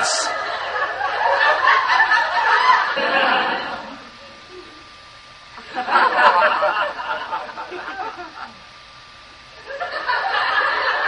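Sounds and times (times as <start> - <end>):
people laughing: 0.0 - 4.1, 5.6 - 8.6, 9.7 - 11.0.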